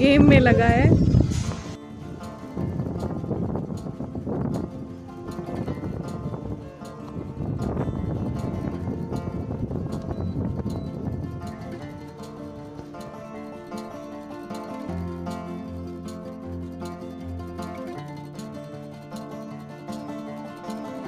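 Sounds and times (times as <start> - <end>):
pulsing low bass: 0.0 - 20.6
plucked string melody: 0.0 - 21.0.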